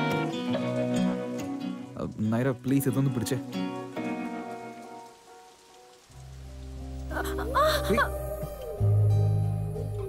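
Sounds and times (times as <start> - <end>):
heavy rain hissing: 0.0 - 10.0.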